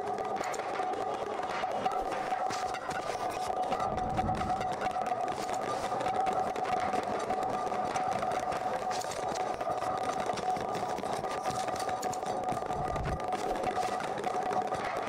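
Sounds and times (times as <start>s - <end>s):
two-tone buzzing drone: 0.0s - 15.0s.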